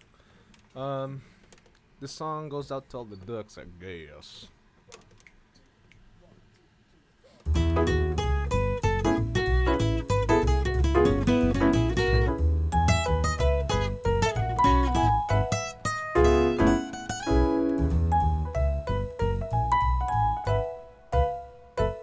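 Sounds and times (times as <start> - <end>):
acoustic guitar: 7.4 - 22.0
digital piano: 7.5 - 22.0.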